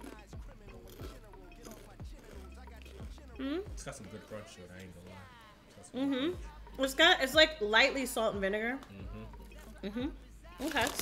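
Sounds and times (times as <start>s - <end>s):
potato chips being chewed: 0.0s - 3.3s, 10.6s - 11.0s.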